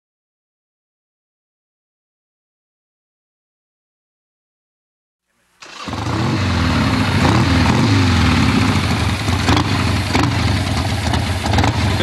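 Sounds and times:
vehicle engine rumbling: 5.6s - 12.0s.

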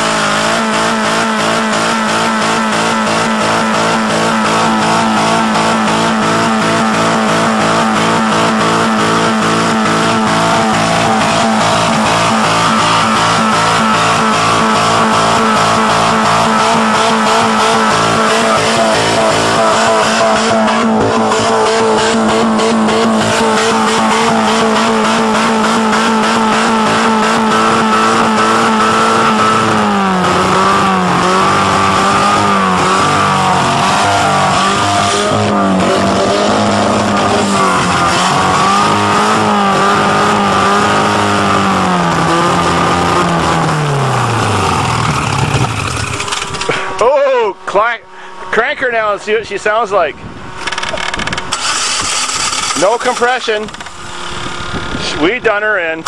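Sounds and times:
car engine revving high: 0.0s - 50.6s, 51.4s - 55.8s.

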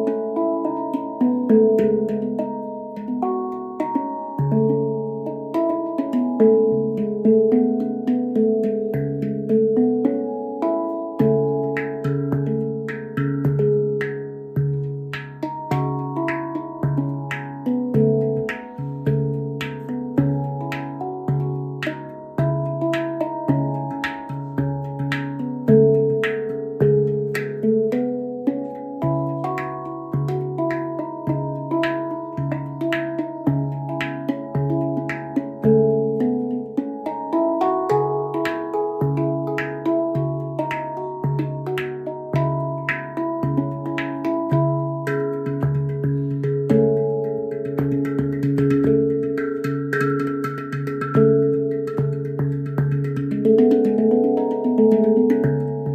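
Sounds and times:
finger taps on handpan shell: 0.0s - 55.9s
handpan low note pulse: 0.0s - 55.9s
handpan melody: 0.0s - 55.9s.

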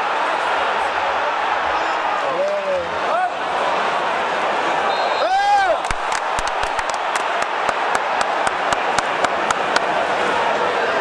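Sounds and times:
stadium crowd noise: 0.0s - 11.0s
hand claps close by: 5.8s - 10.0s.

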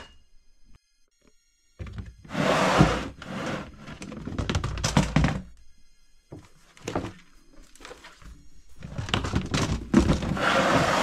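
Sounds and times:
plastic box scraping on floor: 2.2s - 4.6s, 8.9s - 11.0s
hollow plastic thunks: 8.8s - 10.4s.

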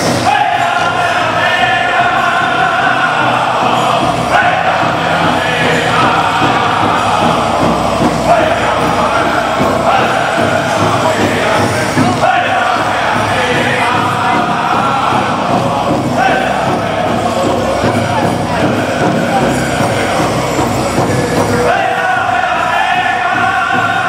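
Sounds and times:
group singing chanted melody: 0.0s - 24.0s
large hand drum beat: 0.0s - 24.0s.

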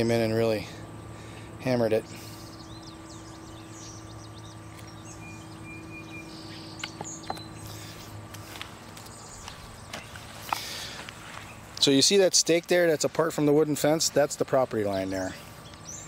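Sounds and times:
steady low hum: 0.0s - 16.0s
faint bird chirps: 0.9s - 8.2s.

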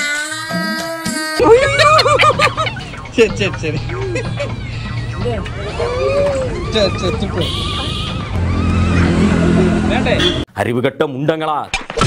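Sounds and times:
vehicle engine hum: 1.4s - 10.5s.

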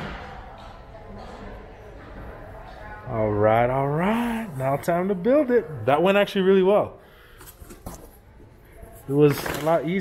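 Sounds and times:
paper packing rustling: 9.0s - 10.0s.

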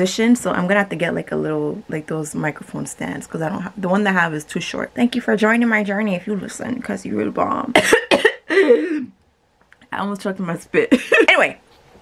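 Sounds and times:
woman coughing: 7.7s - 9.1s, 10.9s - 11.5s.

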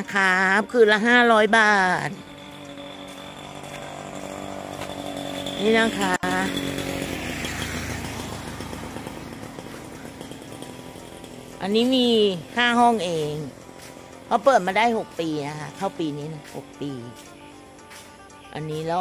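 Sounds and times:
small engine buzzing: 0.0s - 19.0s.

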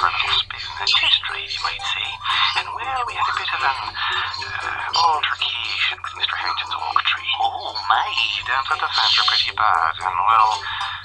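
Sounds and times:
man talking over telephone: 0.0s - 11.0s
music: 0.0s - 11.0s.

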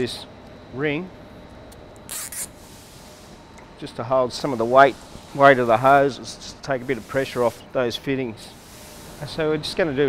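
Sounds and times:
cable tie rasp: 2.1s - 2.6s.

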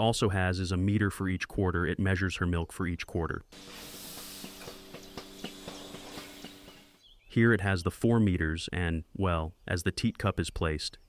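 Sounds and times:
hiss: 3.6s - 6.9s
milking machinery hum: 3.6s - 7.0s.

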